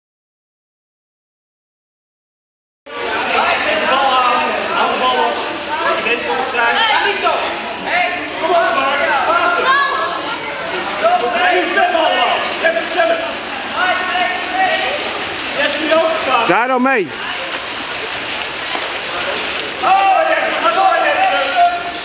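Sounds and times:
splashing water: 0:02.9 - 0:22.0
voices shouting and calling: 0:02.9 - 0:22.0.

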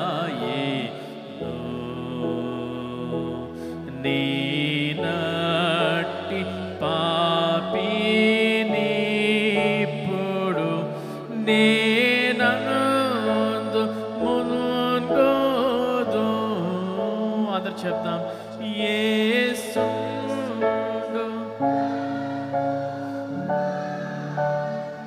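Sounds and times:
man singing a hymn: 0:00.0 - 0:22.1
sustained accompaniment chords: 0:00.0 - 0:25.0.

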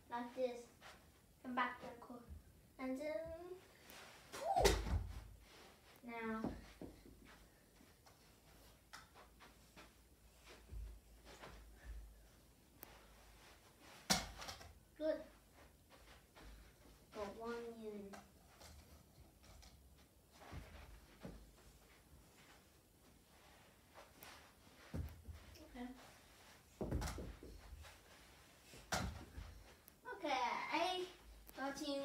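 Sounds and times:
tennis balls landing with thuds: 0:26.8 - 0:27.6.

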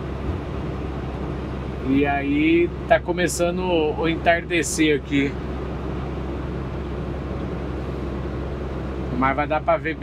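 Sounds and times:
diesel truck engine running: 0:00.0 - 0:10.0
road and tyre noise: 0:00.0 - 0:10.0.

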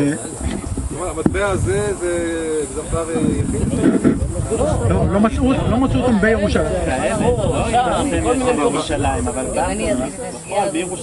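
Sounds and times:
group of people talking: 0:00.0 - 0:11.0
steady high hiss: 0:00.0 - 0:11.0.

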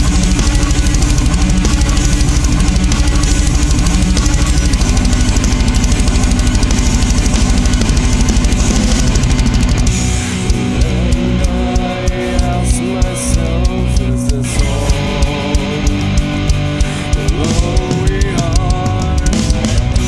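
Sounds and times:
distorted electric guitars: 0:00.0 - 0:20.0
fast kick-drum beat: 0:00.0 - 0:20.0.

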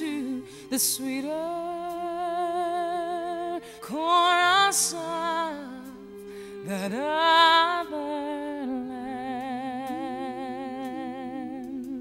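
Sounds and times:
soft musical accompaniment: 0:00.0 - 0:12.0.

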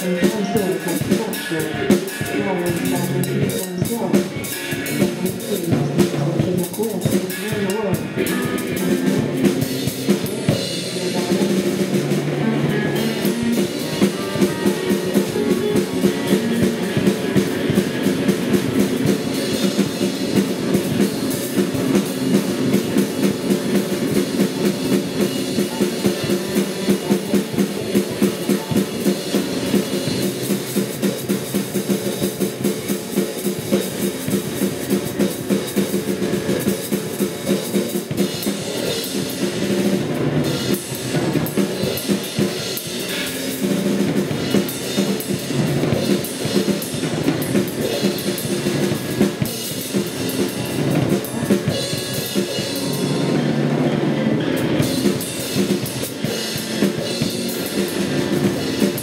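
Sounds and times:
drum kit playing fast: 0:00.0 - 0:59.0.

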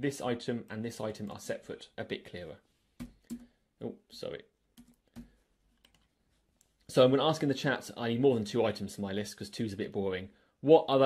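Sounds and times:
computer keyboard keystrokes: 0:03.0 - 0:03.5, 0:04.8 - 0:06.1.

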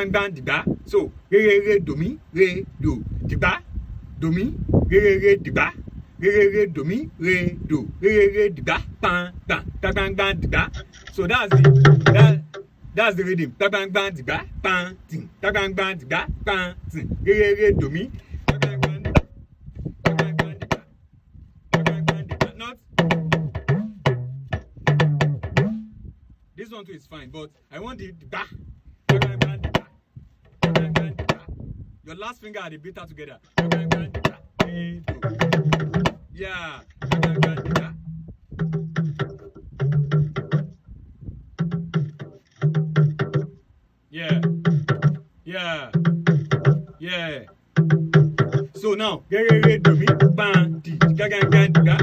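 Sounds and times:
talking drum struck with stick: 0:09.6 - 0:12.7, 0:17.7 - 0:19.3, 0:20.0 - 0:20.9, 0:21.7 - 0:26.0, 0:29.1 - 0:31.6, 0:33.4 - 0:40.8, 0:41.6 - 0:43.6, 0:44.2 - 0:52.0.

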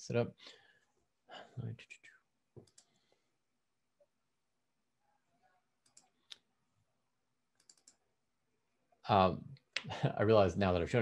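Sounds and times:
computer mouse clicks: 0:02.6 - 0:03.1, 0:05.8 - 0:06.5, 0:07.6 - 0:08.0.

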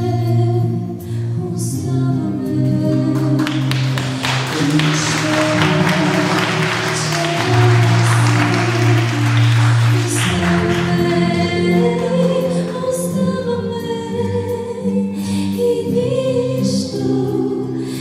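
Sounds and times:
woman singing into microphone: 0:00.0 - 0:18.0
low sustained accompaniment: 0:04.4 - 0:13.5.

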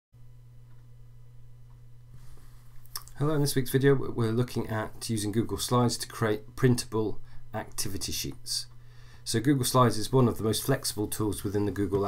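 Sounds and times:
steady low hum: 0:00.2 - 0:12.0.

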